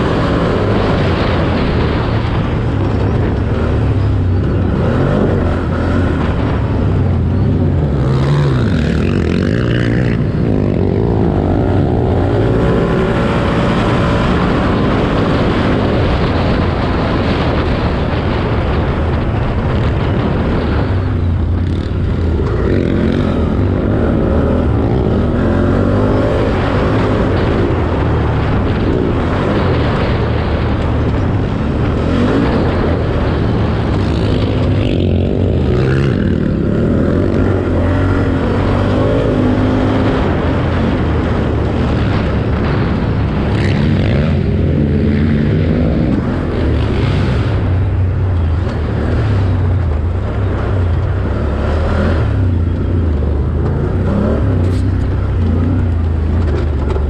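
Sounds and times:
atv engine revving: 0.0 - 57.0.

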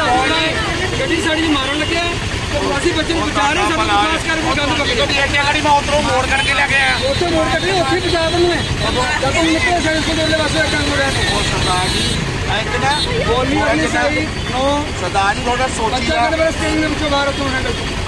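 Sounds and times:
low traffic rumble: 0.0 - 18.0
people arguing heatedly: 0.0 - 18.0.

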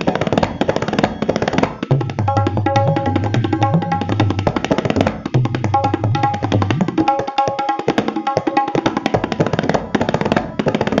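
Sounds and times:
tabla drumming: 0.0 - 11.0.

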